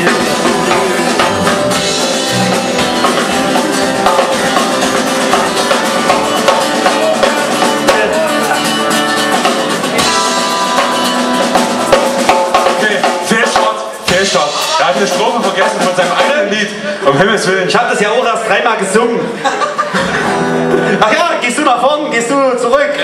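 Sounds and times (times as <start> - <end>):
drum rimshots: 0.0 - 16.9
live rock band playing: 0.0 - 23.0.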